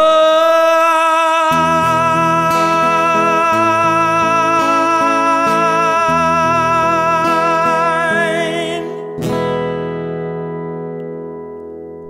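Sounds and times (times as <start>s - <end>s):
man singing with vibrato: 0.0s - 9.6s
acoustic guitar: 0.0s - 12.0s.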